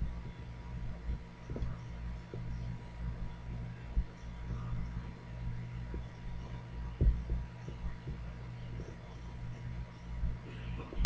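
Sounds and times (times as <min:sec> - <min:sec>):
low electrical hum: 0:00.0 - 0:11.0
soft dull thumps: 0:01.1 - 0:02.7, 0:05.9 - 0:09.0.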